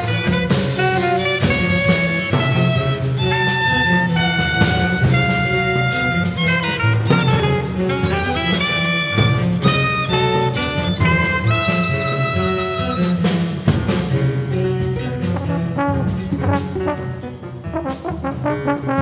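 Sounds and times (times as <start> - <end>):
small jazz ensemble playing: 0.0 - 19.0
trombone and horns: 0.0 - 19.0.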